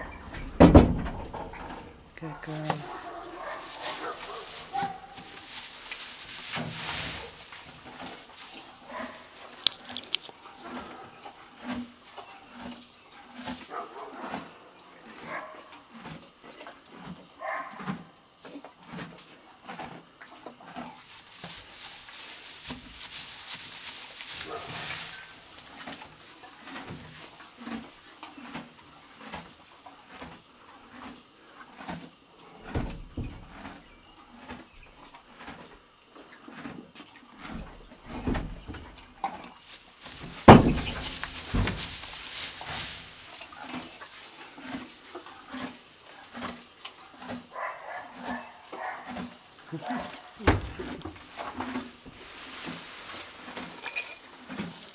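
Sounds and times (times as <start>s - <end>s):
horse moving in trailer: 0.0s - 14.5s, 18.8s - 35.7s, 36.4s - 54.9s
rustling: 1.4s - 14.4s, 20.7s - 31.1s, 38.1s - 54.9s.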